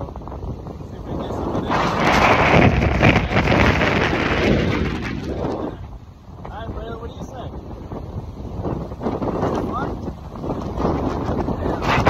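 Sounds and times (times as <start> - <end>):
wind gusting on microphone: 0.0 - 12.0.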